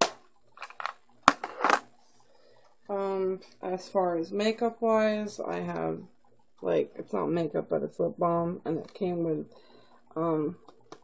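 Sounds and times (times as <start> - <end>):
plastic items clicking and knocking: 0.0 - 1.8
plastic item scraping: 0.0 - 2.3.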